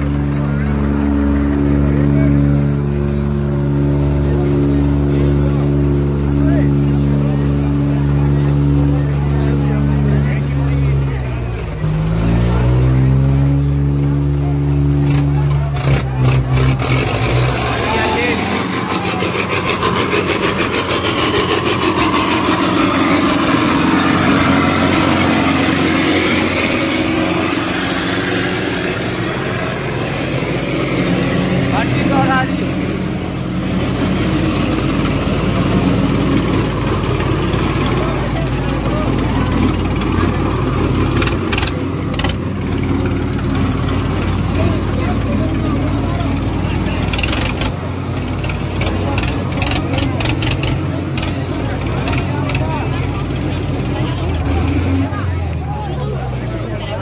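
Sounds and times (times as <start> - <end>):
rough noisy sound: 0.0 - 57.0
tractor diesel engine at high revs: 0.0 - 57.0.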